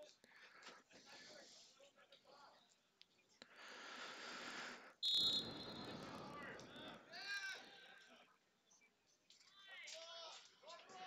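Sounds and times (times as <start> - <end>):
background noise: 0.0 - 11.0
referee whistle blast: 5.0 - 6.1.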